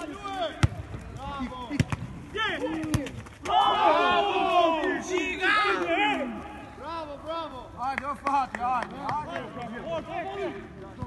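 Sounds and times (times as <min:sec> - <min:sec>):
football being kicked: 0:00.6 - 0:00.9, 0:01.7 - 0:02.1.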